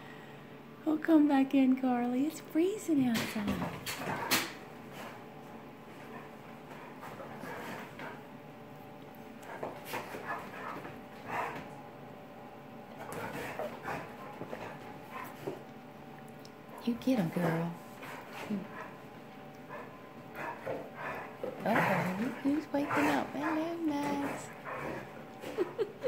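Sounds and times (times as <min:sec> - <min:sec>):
dogs play-fighting: 0:03.2 - 0:26.0.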